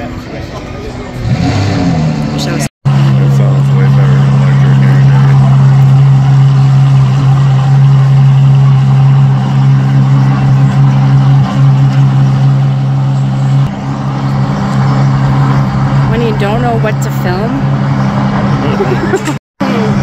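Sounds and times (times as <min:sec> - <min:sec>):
truck engine idling: 0:00.0 - 0:20.0.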